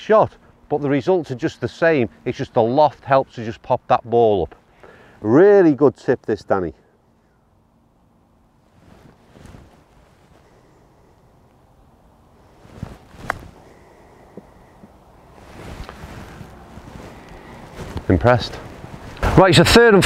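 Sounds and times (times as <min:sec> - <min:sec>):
wind noise on microphone: 0:12.4 - 0:13.8, 0:14.4 - 0:19.4.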